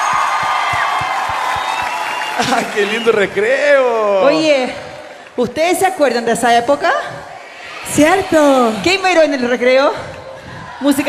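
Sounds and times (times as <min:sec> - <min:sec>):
low drum beat: 0:00.0 - 0:01.8
crowd cheering: 0:00.0 - 0:05.3, 0:07.4 - 0:09.7.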